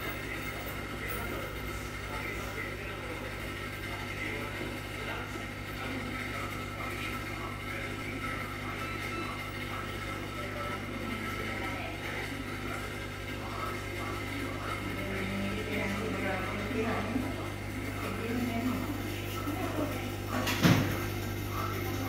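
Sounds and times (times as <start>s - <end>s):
aquarium pump humming: 0.0s - 22.0s.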